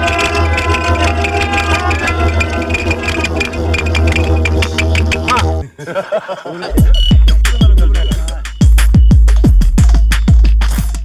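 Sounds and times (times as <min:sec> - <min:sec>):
clicking percussion: 0:00.0 - 0:05.6, 0:06.8 - 0:11.0
deep synth bass: 0:00.0 - 0:05.6, 0:06.7 - 0:11.0
sustained synth tones: 0:00.0 - 0:05.7, 0:06.7 - 0:10.4.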